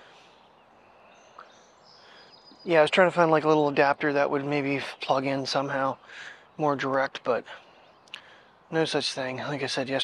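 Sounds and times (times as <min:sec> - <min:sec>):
distant birds chirping: 0:00.0 - 0:10.0.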